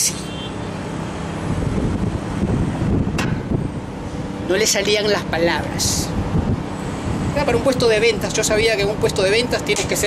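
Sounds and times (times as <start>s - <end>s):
street traffic rumble: 0.0s - 10.0s
wind buffeting microphone: 1.2s - 10.0s.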